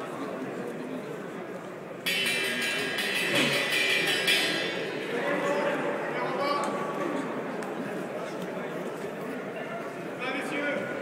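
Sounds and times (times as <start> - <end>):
crowd chatter: 0.0 - 11.0
metallic bell ringing: 2.1 - 5.5.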